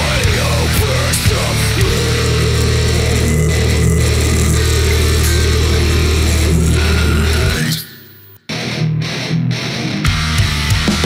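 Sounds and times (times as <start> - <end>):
electric bass riff: 0.0 - 7.8, 8.5 - 11.0
drums: 0.0 - 7.9, 8.5 - 11.0
distorted electric guitar: 0.0 - 11.0.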